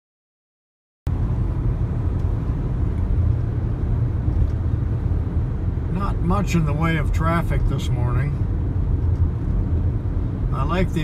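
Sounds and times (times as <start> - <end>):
car interior road and engine rumble: 1.1 - 11.0.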